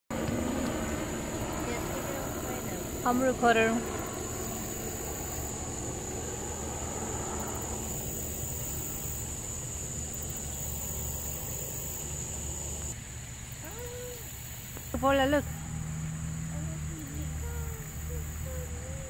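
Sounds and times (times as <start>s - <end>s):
thin high-pitched whine: 0.1s - 12.9s.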